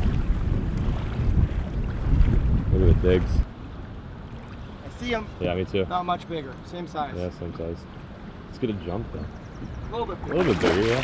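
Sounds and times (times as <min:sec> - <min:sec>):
wind buffeting microphone: 0:00.0 - 0:05.8
fast river current rushing: 0:10.0 - 0:11.0.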